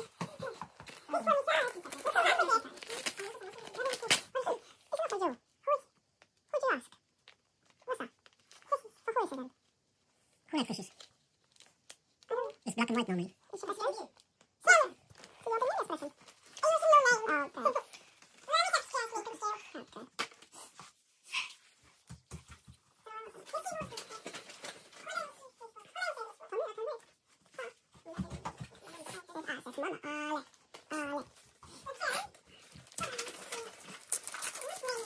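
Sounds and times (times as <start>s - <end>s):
child running on wooden floor: 28.0s - 29.0s.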